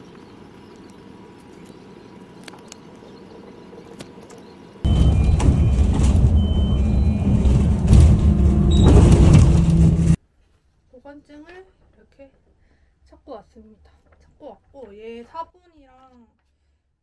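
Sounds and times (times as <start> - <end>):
vehicle road noise rumbling: 0.0 - 10.2.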